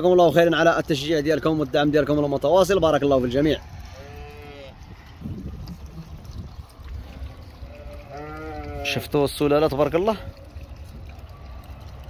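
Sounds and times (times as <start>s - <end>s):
sheep bleating: 3.9s - 4.8s, 7.6s - 9.0s.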